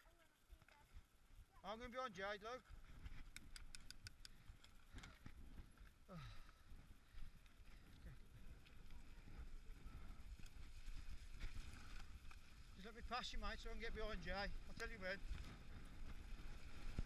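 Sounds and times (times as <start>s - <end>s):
bicycle clicking: 3.2s - 5.2s.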